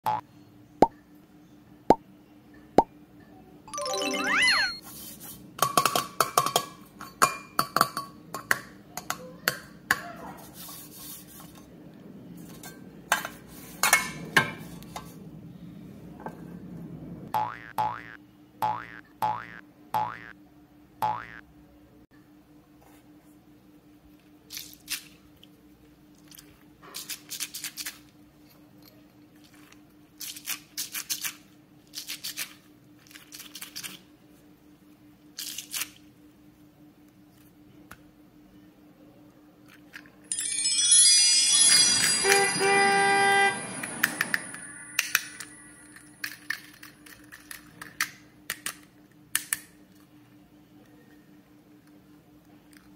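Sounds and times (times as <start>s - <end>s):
bright chiming music jingle: 3.7s - 4.8s, 40.3s - 46.2s
cartoon boing: 17.4s - 20.3s, 21.0s - 21.4s.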